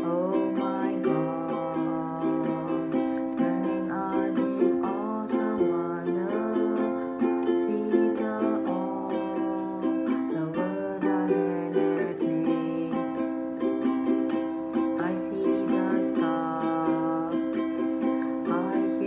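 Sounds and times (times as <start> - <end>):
ukulele strumming: 0.0 - 19.0.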